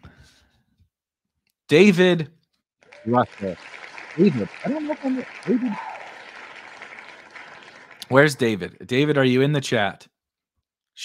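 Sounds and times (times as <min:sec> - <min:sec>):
recorded crowd applause: 0:02.8 - 0:09.0.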